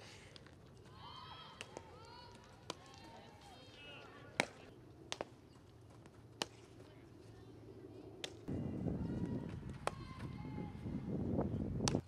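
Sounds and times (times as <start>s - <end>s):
softball impact crack: 4.2s - 5.4s, 6.4s - 6.8s, 8.2s - 8.5s, 11.8s - 12.0s.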